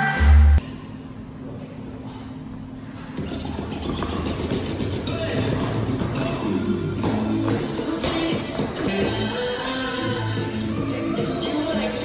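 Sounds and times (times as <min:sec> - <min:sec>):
music playing: 0:00.0 - 0:00.6, 0:03.1 - 0:12.0.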